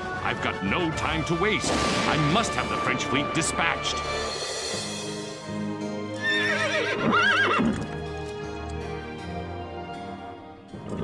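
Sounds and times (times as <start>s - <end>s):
background music: 0.0s - 11.0s
horse whinnying: 6.2s - 8.0s.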